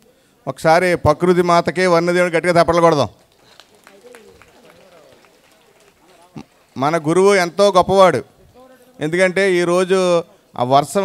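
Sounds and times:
audience voices: 3.2 - 7.3.

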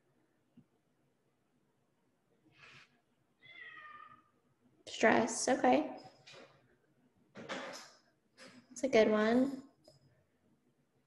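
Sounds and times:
cat meowing faintly: 3.4 - 4.4.

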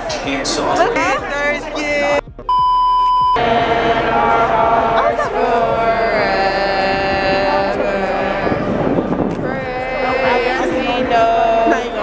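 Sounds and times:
background music: 0.0 - 12.0
electronic censor bleep: 2.5 - 3.4.

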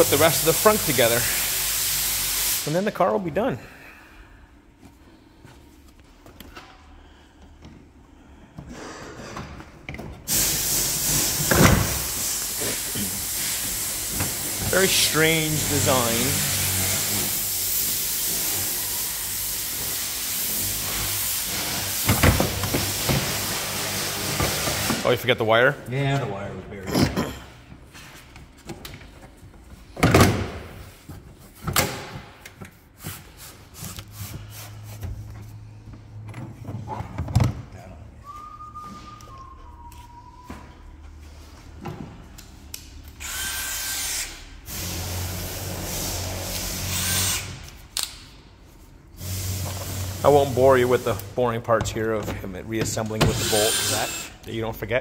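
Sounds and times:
loud steady hiss: 0.0 - 3.2, 10.3 - 25.3, 49.2 - 51.4.

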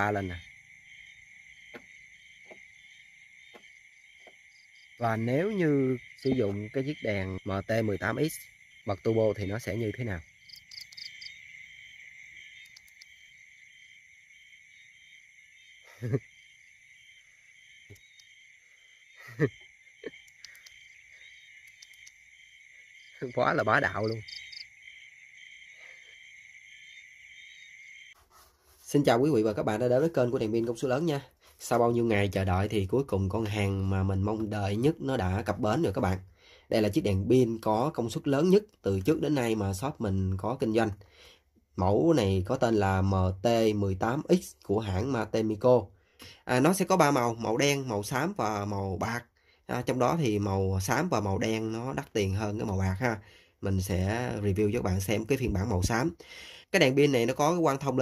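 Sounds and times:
crickets trilling: 0.0 - 28.2, 28.9 - 58.0
faint short clicks: 20.2 - 20.8.

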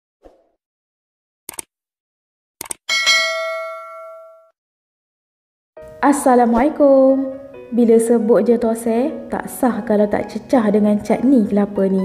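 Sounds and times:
bell ding: 2.9 - 4.5.

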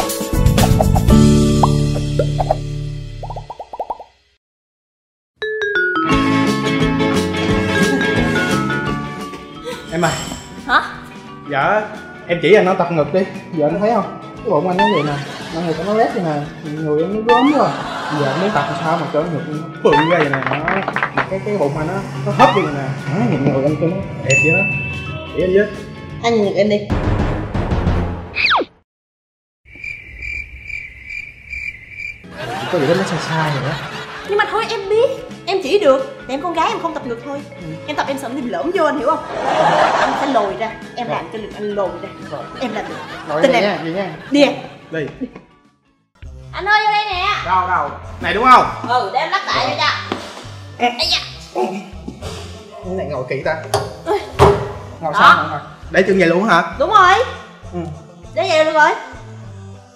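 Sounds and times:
rising bloop blips: 14.8 - 15.2, 17.3 - 17.7, 19.9 - 20.2, 22.4 - 22.9
cricket chirping trill: 29.7 - 32.3.

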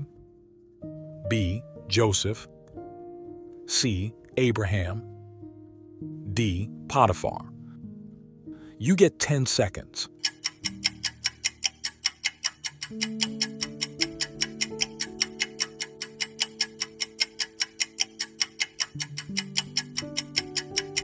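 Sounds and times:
soft music with held chords: 0.0 - 21.0
fast clock ticking: 10.2 - 21.0.

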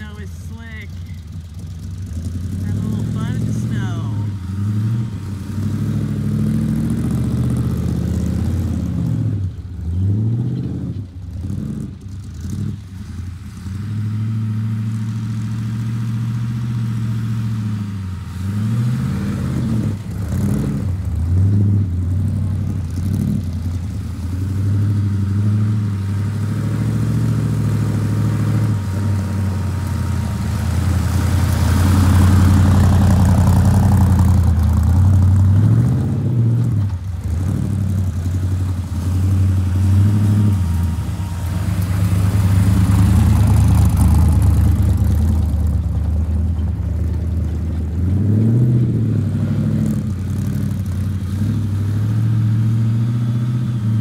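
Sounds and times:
car engine revving: 0.0 - 54.0.

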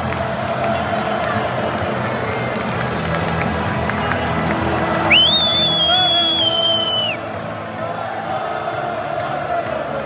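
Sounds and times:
stadium crowd noise: 0.0 - 10.0
shrill whistle: 5.1 - 7.2.

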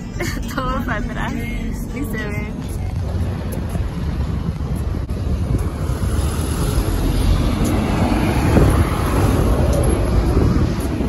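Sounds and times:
road traffic: 0.0 - 11.0
wind rumbling on microphone: 1.6 - 11.0.

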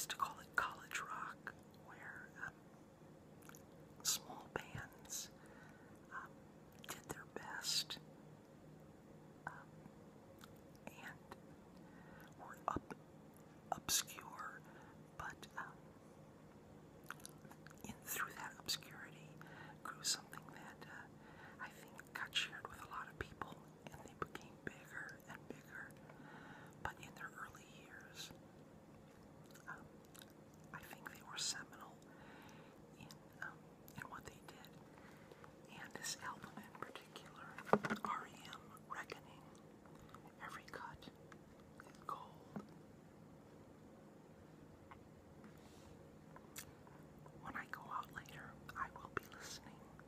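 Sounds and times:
person whispering: 0.0 - 2.6, 4.0 - 5.4, 6.1 - 8.0, 9.5 - 9.7, 10.8 - 11.4, 12.2 - 12.9, 13.7 - 15.8, 17.8 - 26.0, 26.8 - 28.3, 29.6 - 29.9, 30.7 - 32.1, 33.0 - 34.8, 35.6 - 39.6, 40.2 - 41.1, 41.8 - 42.7, 47.4 - 50.0.

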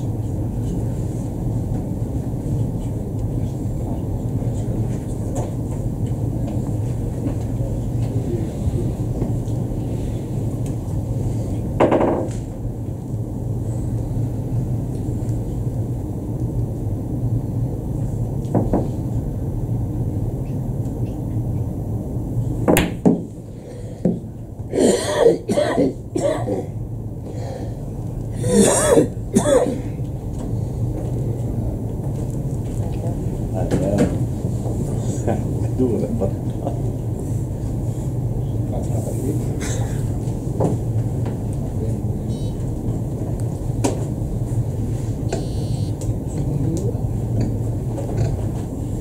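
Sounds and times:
low hum of hall: 0.0 - 49.0
person coughing: 24.7 - 26.8, 28.4 - 30.0, 39.6 - 40.0.

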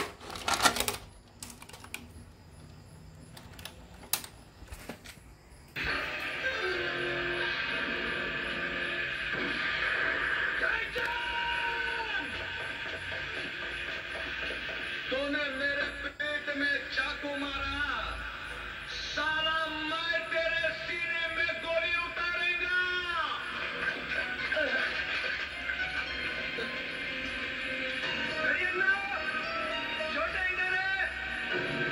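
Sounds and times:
steady tape hiss: 0.0 - 31.9
faint music: 5.8 - 31.9.

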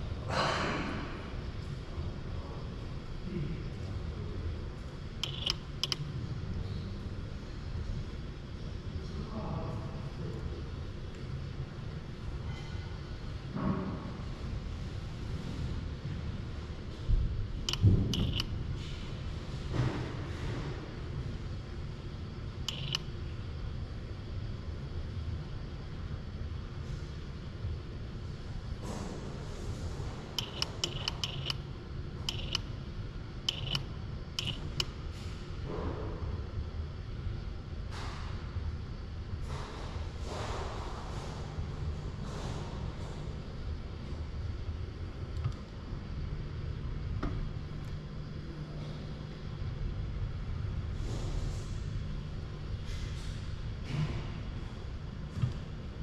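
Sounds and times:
steady low hum: 0.0 - 56.0
light metallic clicks and taps: 30.4 - 31.6.

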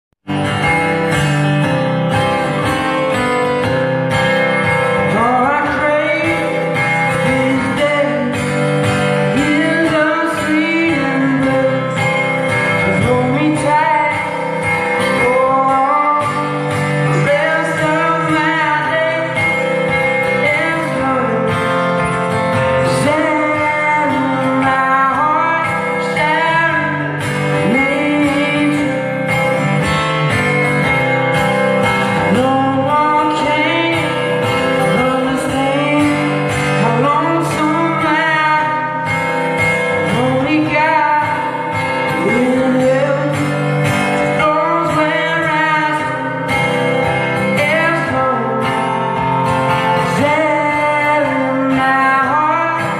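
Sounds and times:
amplified acoustic guitar: 0.2 - 52.9
person singing: 0.3 - 52.9.

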